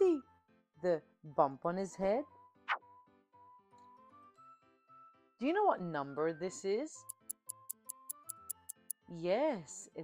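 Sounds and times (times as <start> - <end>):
soft background music: 0.0 - 10.0
clock ticking: 7.1 - 8.9.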